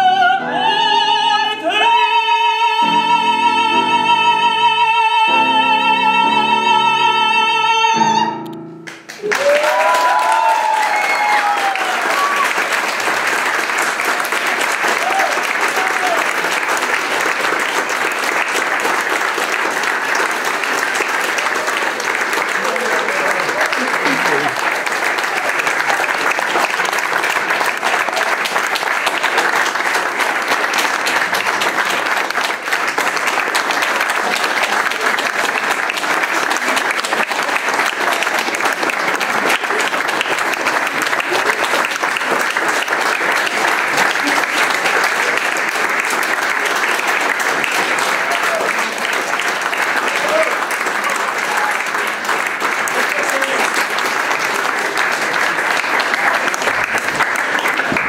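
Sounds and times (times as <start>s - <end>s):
audience applauding: 8.8s - 58.0s.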